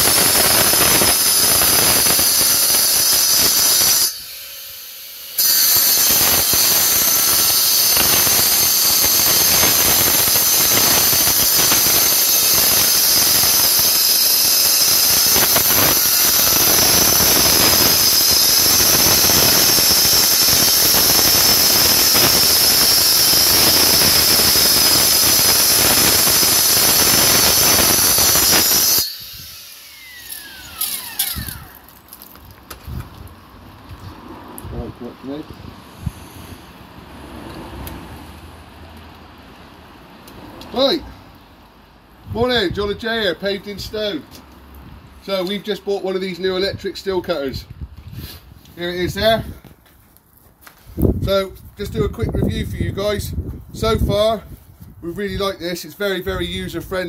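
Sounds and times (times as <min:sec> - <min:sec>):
saw cutting stone squeal: 0:00.0 - 0:32.1
saw spinning down: 0:00.0 - 0:32.3.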